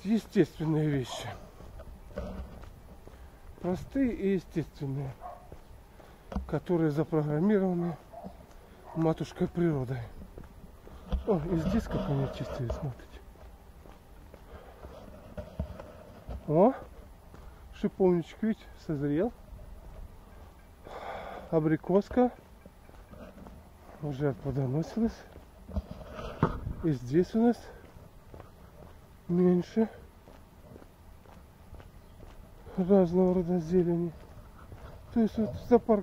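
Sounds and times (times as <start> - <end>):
footsteps on path: 0.0 - 36.0.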